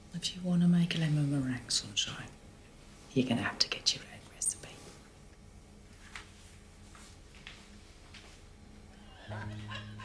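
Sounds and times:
woman whispering: 0:03.6 - 0:05.0.

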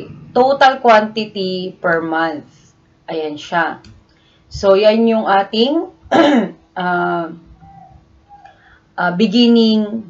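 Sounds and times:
woman clearing her throat: 0:06.1 - 0:06.6.

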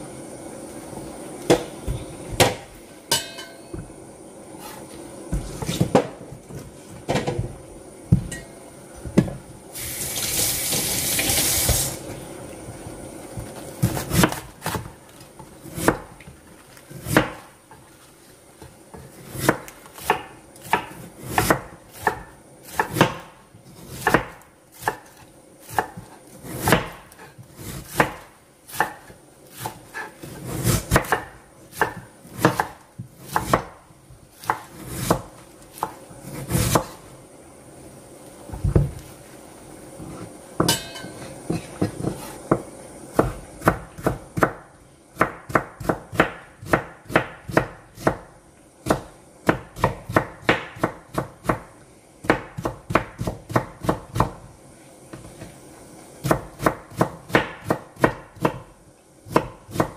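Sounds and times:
knife slicing cabbage on wooden board: 0:19.0 - 0:33.7, 0:34.3 - 0:37.0.

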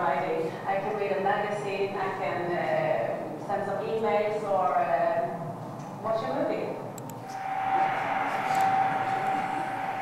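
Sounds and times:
high hum: 0:07.2 - 0:10.0
road vehicles driving: 0:07.2 - 0:10.0.

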